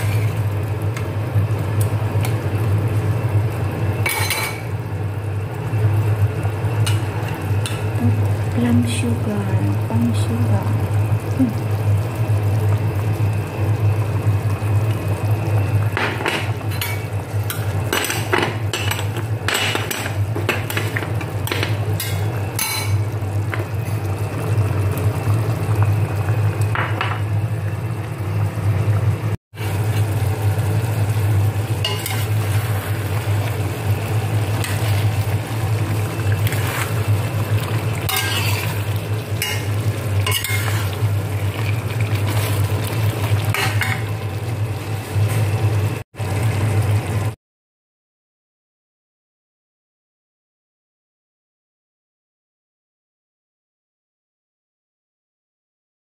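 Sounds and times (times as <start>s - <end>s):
sauce simmering: 0.0s - 4.0s, 4.6s - 19.5s, 20.1s - 47.3s
spatula scraping a metal pot: 38.1s - 38.8s, 39.4s - 41.0s.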